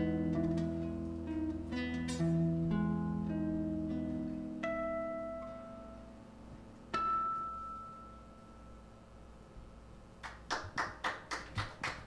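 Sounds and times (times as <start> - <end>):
guitar note ringing: 0.0 - 9.4
audience clapping: 10.2 - 12.0.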